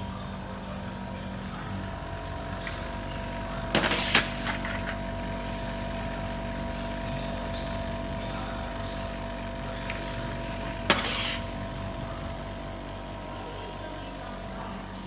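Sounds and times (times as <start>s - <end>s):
bottle-filling machine humming: 0.0s - 15.0s
glass bottles clinking: 1.9s - 14.8s.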